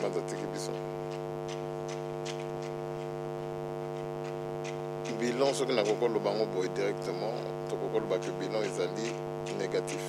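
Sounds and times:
electrical mains hum: 0.0 - 10.0
faint ticks: 0.3 - 10.0.

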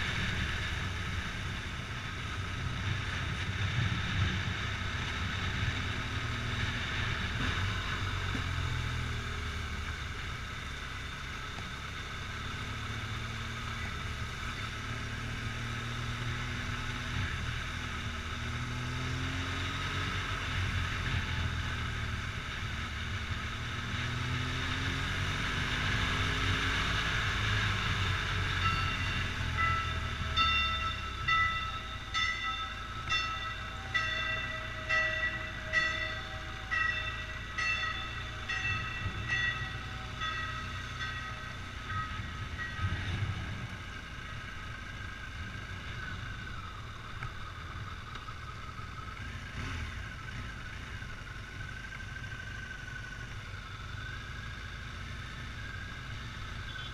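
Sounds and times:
motorcycle engine running: 0.0 - 56.9
repeating ringing tone: 28.4 - 43.2.

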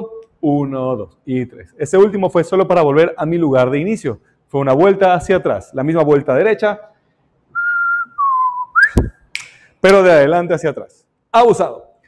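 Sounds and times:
man whistling: 7.5 - 9.5
sharp click: 9.0 - 9.6.

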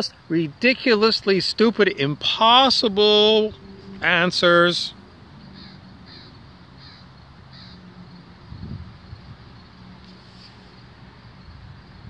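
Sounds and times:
low steady background noise: 0.0 - 12.0
faint bird calls: 5.4 - 7.9.

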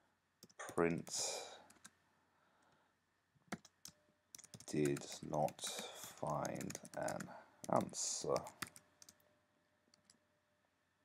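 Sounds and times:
computer keyboard keystrokes: 3.5 - 9.2.

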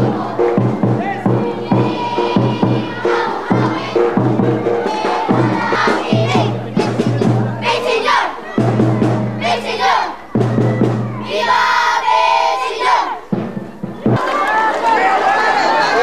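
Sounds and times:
drum-led dance music: 0.0 - 11.5
voices shouting together: 0.0 - 13.3
crowd of voices: 0.0 - 16.0.

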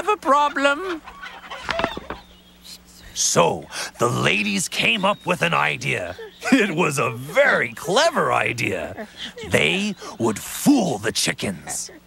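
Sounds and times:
chicken clucking and squawking: 0.0 - 2.9.

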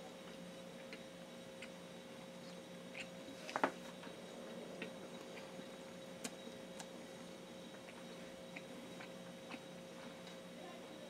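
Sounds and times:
steady low hum: 0.0 - 11.0
mouth clicks from chewing: 7.8 - 9.7.

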